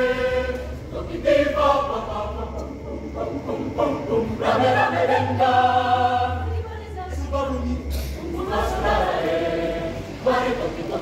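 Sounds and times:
mixed choir singing: 0.0 - 11.0.

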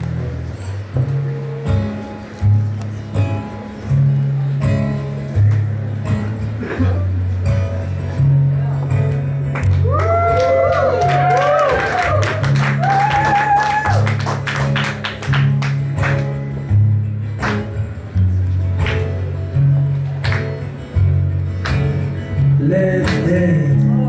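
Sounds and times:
acoustic guitar strumming: 0.0 - 9.8, 14.1 - 24.0
gliding voice-like whoops: 9.8 - 14.1.

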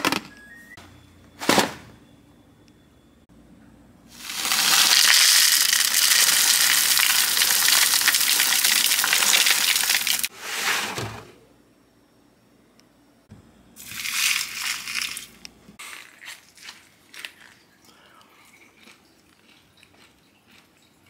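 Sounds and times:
granola pouring into bowl: 4.2 - 10.3
milk pouring: 4.2 - 10.3.

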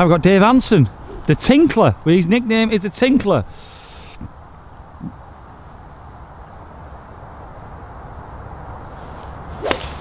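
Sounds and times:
golf club striking ball: 9.6 - 10.0.

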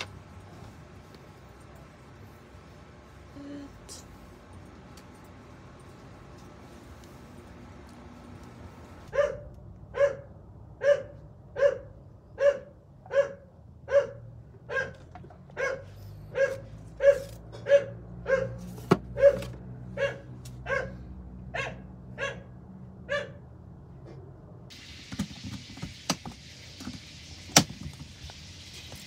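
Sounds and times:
dog barking: 9.1 - 23.4.

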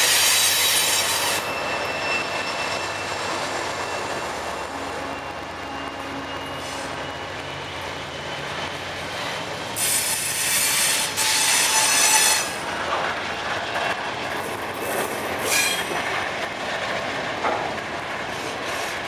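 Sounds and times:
steel wheels squealing: 0.0 - 12.7, 14.8 - 16.1
freight train rumbling and clattering: 0.0 - 19.0.

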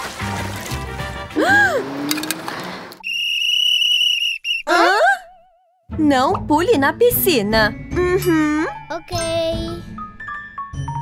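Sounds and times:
background music: 0.0 - 2.4, 5.9 - 11.0
plastic whistle blast: 3.0 - 4.8.

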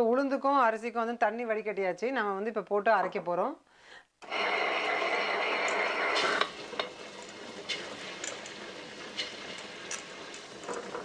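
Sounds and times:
wet grinder whirring: 4.2 - 11.0.

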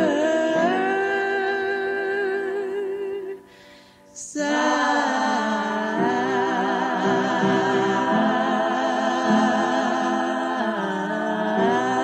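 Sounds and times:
voices humming a hymn: 0.0 - 3.4, 4.2 - 12.0.

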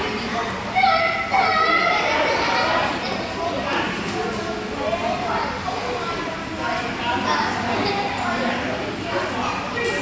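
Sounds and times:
echoing chatter of children and adults: 0.0 - 10.0.

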